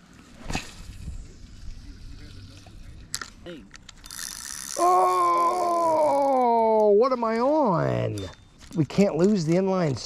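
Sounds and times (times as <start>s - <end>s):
fishing rod and reel handling: 2.6s - 9.8s
reel clicks: 3.1s - 4.9s.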